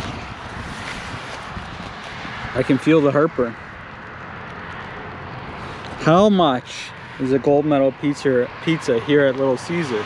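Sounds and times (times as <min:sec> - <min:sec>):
wind noise on microphone: 0:00.0 - 0:03.4.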